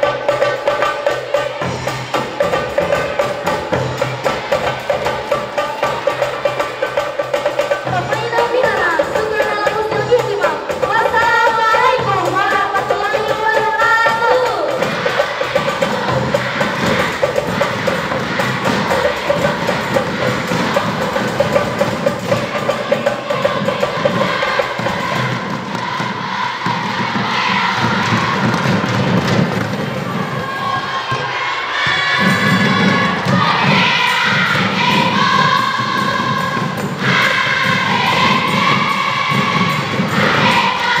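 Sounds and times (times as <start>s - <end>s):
frame drums and hand drums: 0.0s - 41.0s
women singing together: 0.0s - 41.0s.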